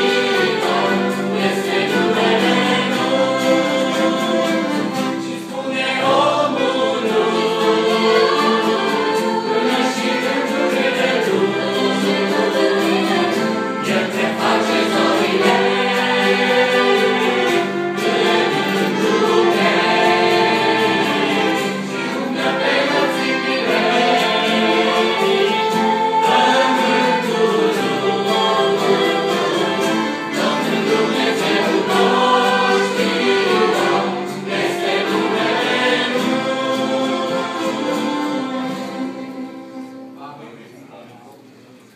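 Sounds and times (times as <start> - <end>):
mixed choir singing a hymn: 0.0 - 40.1.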